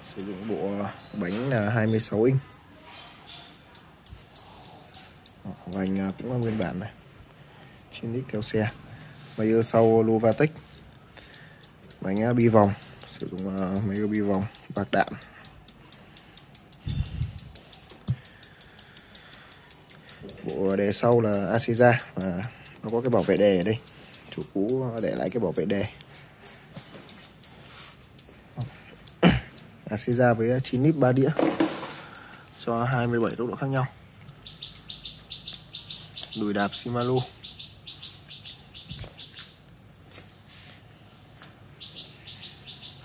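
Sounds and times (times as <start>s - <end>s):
bike freewheel ticking: 3.6s - 6.5s, 11.2s - 31.2s
high-pitched chirping: 34.4s - 39.6s, 41.8s - 43.0s.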